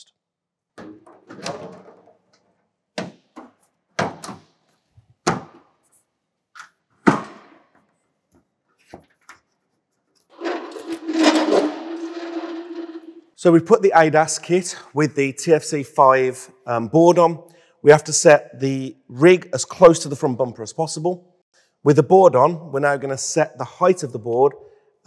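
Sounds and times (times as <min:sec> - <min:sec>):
scraping noise: 0:10.3 - 0:13.4.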